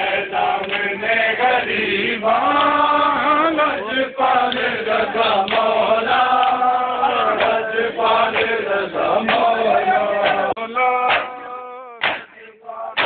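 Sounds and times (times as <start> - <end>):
men chanting in unison: 0.0 - 13.0
steady beat: 4.5 - 13.0.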